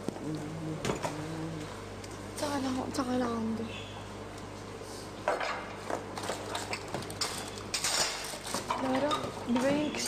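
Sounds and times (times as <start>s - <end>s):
cutlery and dishes clinking: 6.6s - 9.3s.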